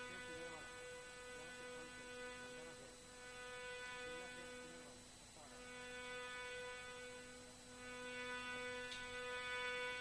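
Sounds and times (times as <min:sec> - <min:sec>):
faint high whine: 0:00.0 - 0:10.0
low steady hum: 0:00.0 - 0:10.0.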